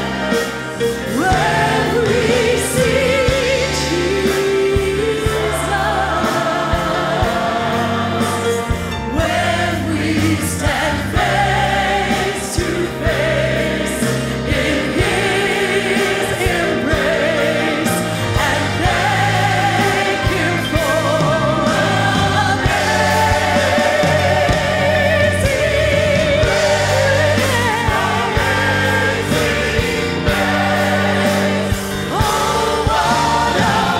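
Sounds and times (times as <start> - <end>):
gospel choir singing: 0.0 - 33.9
instrumental accompaniment: 0.0 - 33.9.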